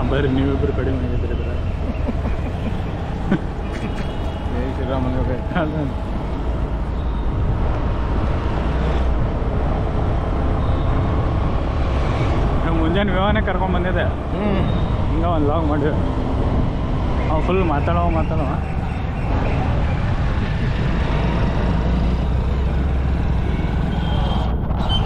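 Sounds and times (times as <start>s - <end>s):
vehicle engine and road noise: 0.0s - 25.0s.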